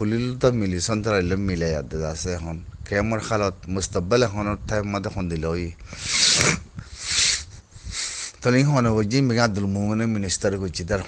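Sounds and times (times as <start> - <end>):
harsh hissy breaths: 5.8 - 8.4.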